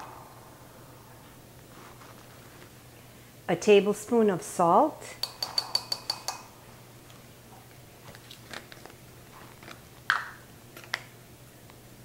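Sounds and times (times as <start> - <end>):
plastic spoon tapping bowl rim: 5.2 - 6.4.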